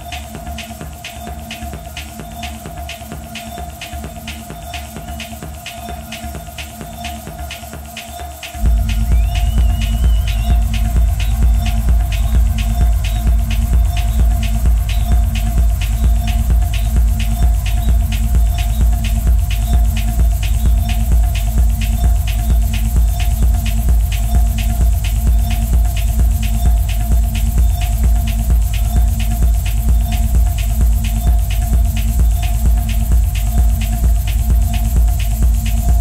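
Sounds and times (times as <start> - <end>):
hi-hat ticks: 0.0 - 36.0
kick drum and bass: 0.0 - 36.0.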